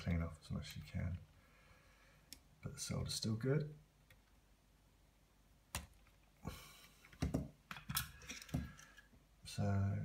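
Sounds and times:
hands rustling wires and tools: 5.7s - 9.2s.

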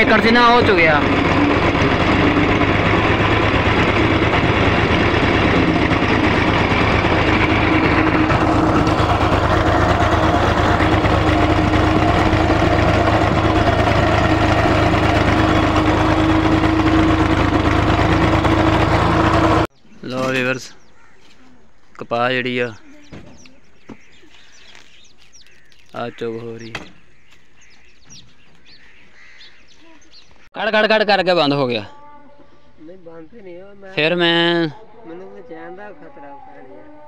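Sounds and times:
tractor diesel engine running: 0.0s - 21.1s.

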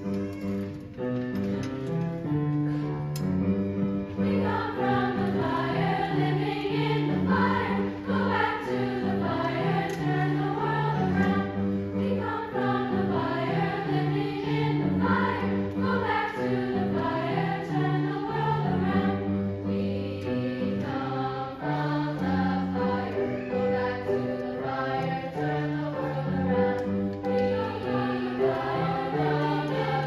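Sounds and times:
youth choir singing: 4.2s - 30.0s.

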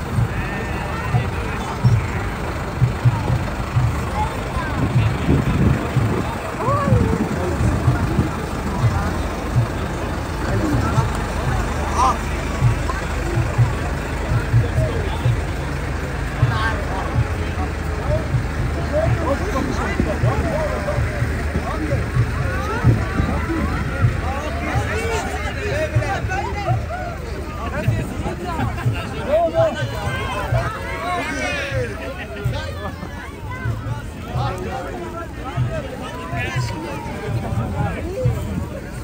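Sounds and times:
people talking and calling out: 0.0s - 39.0s
tractor engine running: 0.0s - 39.0s.

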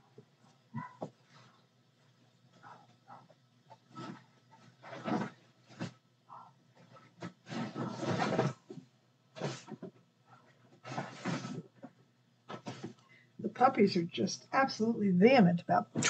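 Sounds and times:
dogs barking: 0.7s - 1.0s.

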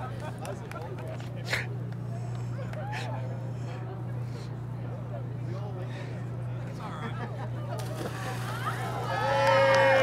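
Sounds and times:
crowd voices: 0.0s - 10.0s
steady low hum: 0.0s - 10.0s.

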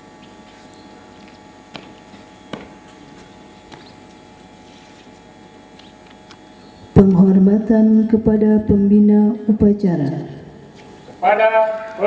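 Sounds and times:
public address system hum: 6.5s - 12.0s.

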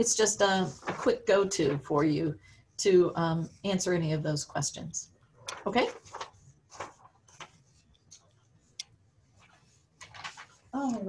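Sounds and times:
paper rustling and clicking: 0.7s - 1.9s, 5.4s - 8.3s, 9.4s - 11.0s.

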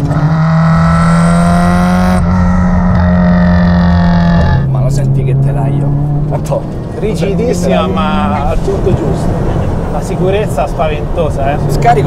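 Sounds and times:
car engine revving from inside cabin: 0.2s - 4.6s.

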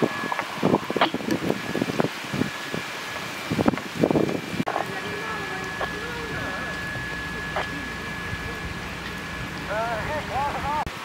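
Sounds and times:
large fire crackling: 0.0s - 11.0s
thin steady high tone: 0.0s - 11.0s
faint distant voices: 4.7s - 10.9s.

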